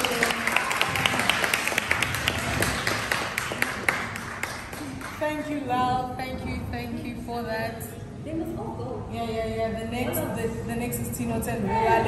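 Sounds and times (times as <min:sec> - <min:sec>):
people clapping: 0:00.0 - 0:05.8.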